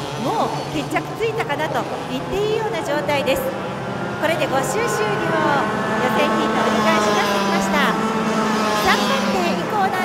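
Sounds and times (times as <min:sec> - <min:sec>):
kart engines at high revs: 0:00.0 - 0:10.0.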